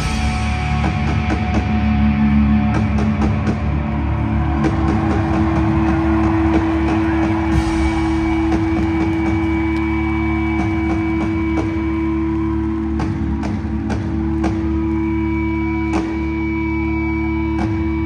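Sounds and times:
electric guitar feedback drone: 0.0s - 18.0s.

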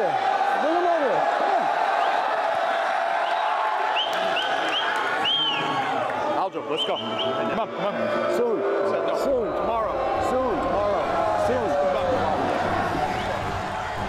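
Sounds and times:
large crowd cheering: 0.0s - 14.0s.

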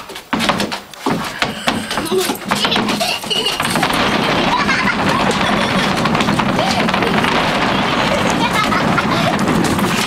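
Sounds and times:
loud steady background noise: 0.0s - 10.0s.

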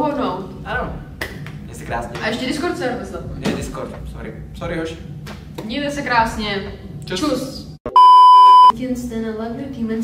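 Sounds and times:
electronic beep: 7.9s - 8.7s.

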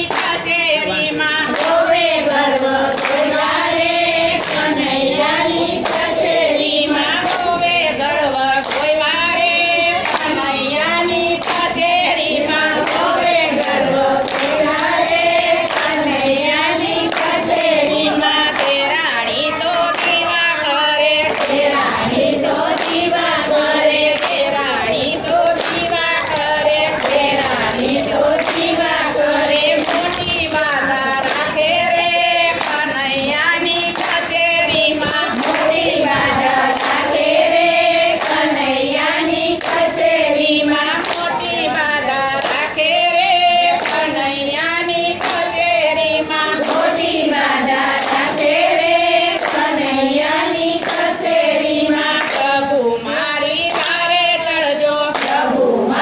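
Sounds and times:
hand claps: 0.0s - 55.6s
women singing together: 0.0s - 56.0s.

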